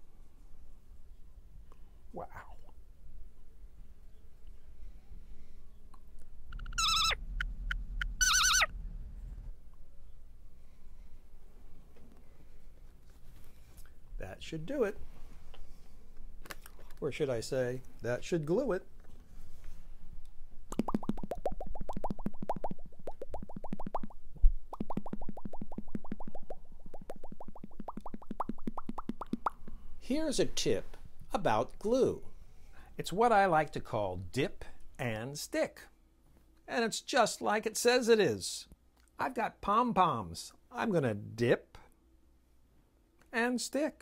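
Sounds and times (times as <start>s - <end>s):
low hum: 2.7s - 12.8s
short pips: 6.5s - 8.7s
cartoon rising bloops: 6.5s - 9.0s, 20.7s - 29.6s
cartoon whistle warbling tones: 6.6s - 8.7s.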